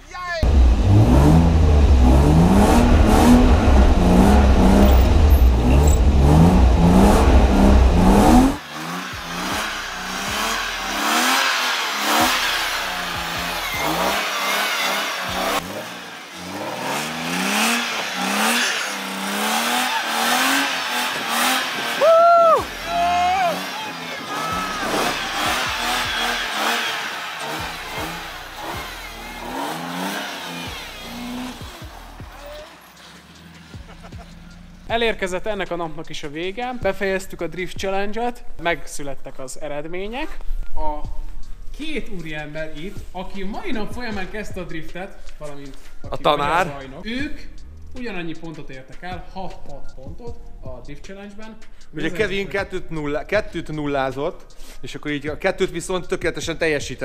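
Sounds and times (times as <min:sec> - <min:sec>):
car engine revving: 0:00.4 - 0:34.9.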